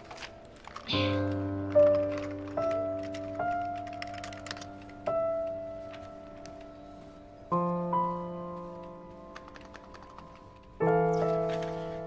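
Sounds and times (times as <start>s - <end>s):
soft piano music: 0.0s - 12.0s
computer keyboard typing clicks: 0.1s - 5.6s, 9.3s - 10.8s.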